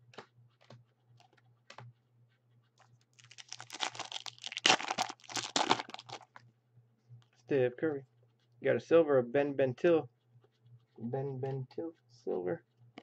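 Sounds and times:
cards and wrapper crackling: 0:03.1 - 0:06.4.

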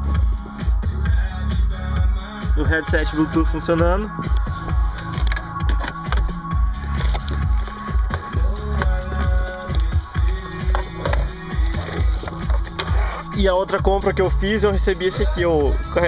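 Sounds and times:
electronic dance music in car: 0:00.0 - 0:16.0.

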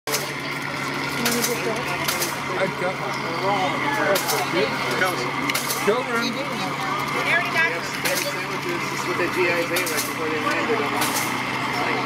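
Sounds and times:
electric motors humming: 0:00.1 - 0:12.0
people chatting: 0:00.1 - 0:12.0.

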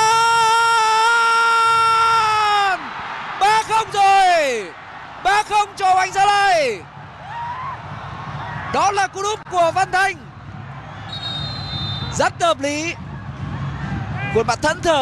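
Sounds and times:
commentator shouting: 0:00.0 - 0:06.8.

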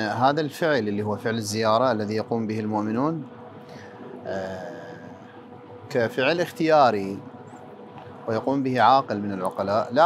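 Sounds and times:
man speaking: 0:00.0 - 0:03.3, 0:04.2 - 0:05.2, 0:05.9 - 0:07.2, 0:08.2 - 0:10.0.

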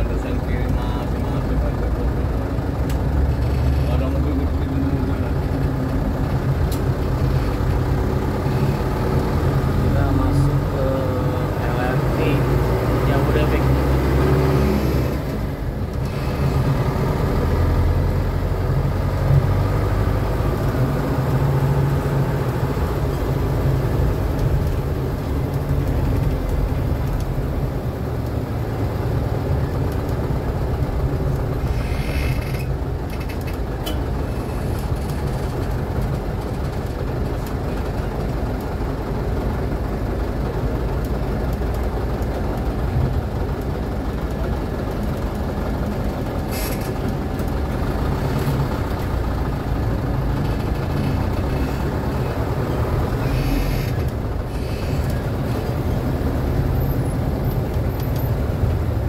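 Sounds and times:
bus engine rumbling: 0:00.0 - 0:59.0
brake hiss: 0:46.4 - 0:47.0.

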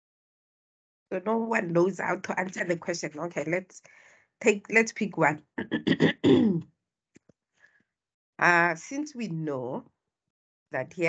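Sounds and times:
woman clearing her throat: 0:05.6 - 0:06.6.

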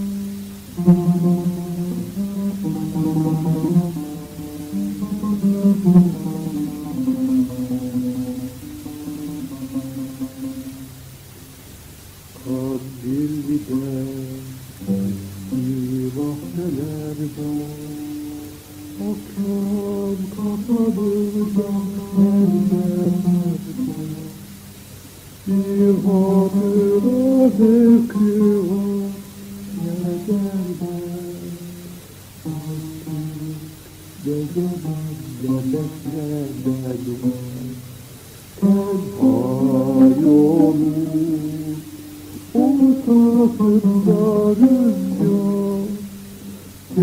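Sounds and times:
man singing: 0:00.0 - 0:10.7, 0:12.4 - 0:24.5, 0:25.4 - 0:37.8, 0:38.6 - 0:47.0
oud playing: 0:00.0 - 0:47.0.

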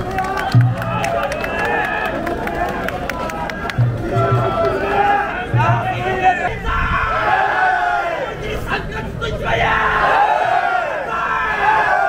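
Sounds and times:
crowd of men shouting in chorus: 0:00.0 - 0:12.0.

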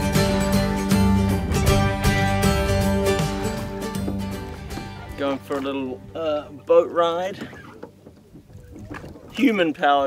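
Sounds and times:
acoustic guitar music: 0:00.0 - 0:07.8.

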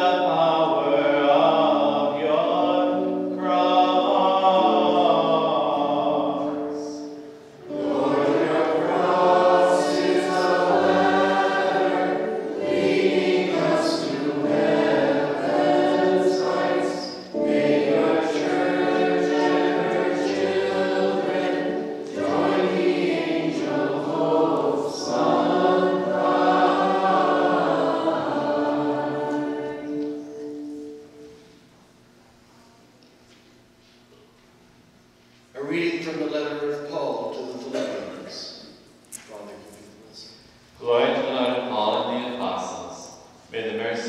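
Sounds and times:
group singing a hymn: 0:00.0 - 0:31.5.

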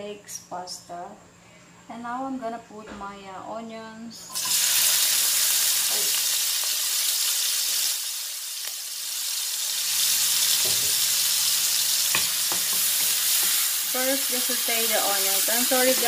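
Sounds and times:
onions sizzling in oil: 0:04.3 - 0:16.0.

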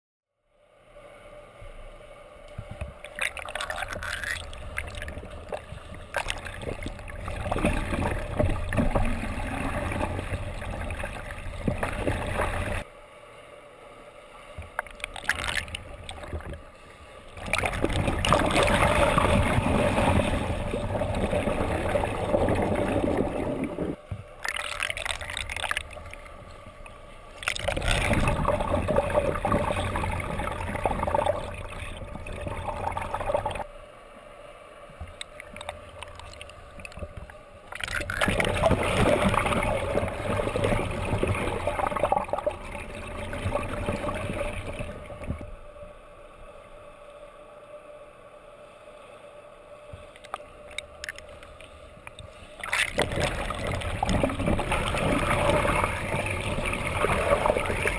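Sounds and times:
water churning and bubbling underwater: 0:00.6 - 0:57.9.

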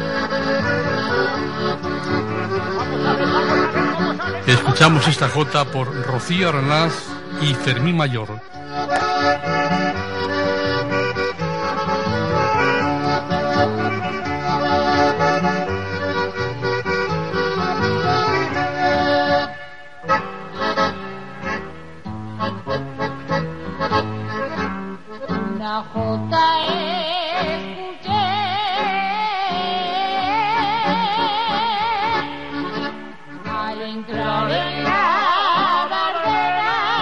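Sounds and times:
accordion: 0:00.0 - 0:37.0
person singing with vibrato: 0:25.2 - 0:37.0.

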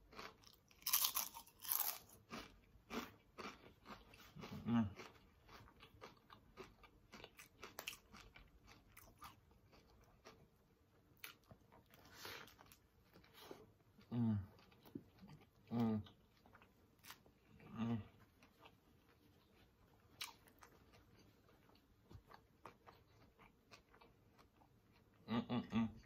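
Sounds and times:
crunching and chewing chips: 0:00.0 - 0:26.0.

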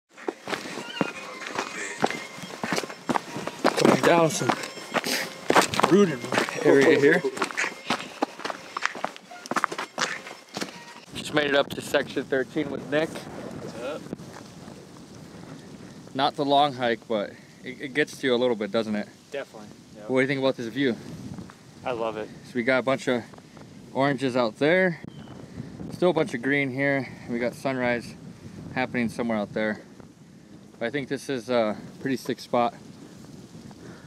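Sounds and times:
footsteps on leaves and dirt: 0:00.1 - 0:11.2, 0:13.6 - 0:15.2
wind noise on microphone: 0:00.1 - 0:34.0.

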